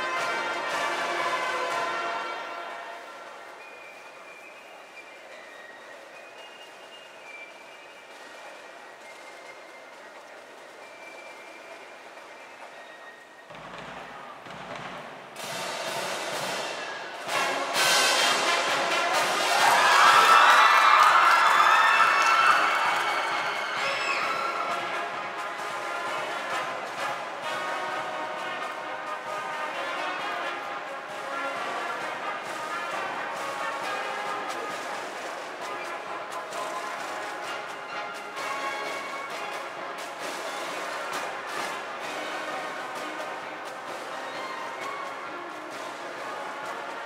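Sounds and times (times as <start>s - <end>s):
drums: 0.0s - 2.8s, 8.0s - 47.0s
marching band brass: 0.0s - 5.4s, 13.4s - 47.0s.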